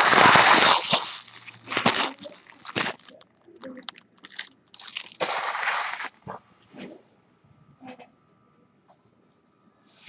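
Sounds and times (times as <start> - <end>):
foil wrappers being crumpled: 0.0 - 6.2.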